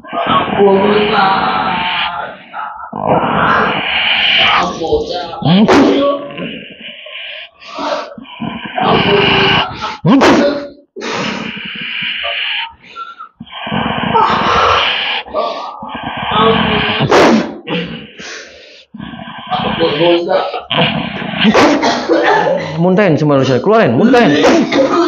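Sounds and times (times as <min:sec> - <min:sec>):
man wailing and gagging: 0:07.6 - 0:12.8, 0:14.0 - 0:18.1, 0:24.0 - 0:25.0.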